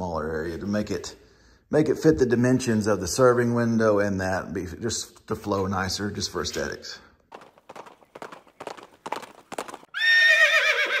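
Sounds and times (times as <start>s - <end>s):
horse hooves clip-clopping: 6.5s - 10.2s
horse whinny: 9.9s - 11.0s.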